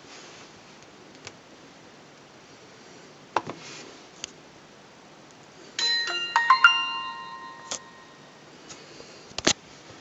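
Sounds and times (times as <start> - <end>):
smartphone power-on chime: 5.8 - 8.5.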